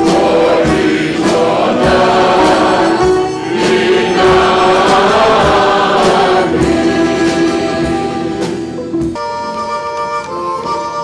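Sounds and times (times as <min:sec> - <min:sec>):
choir singing: 0:00.0 - 0:08.9
instruments playing long notes: 0:00.0 - 0:11.0.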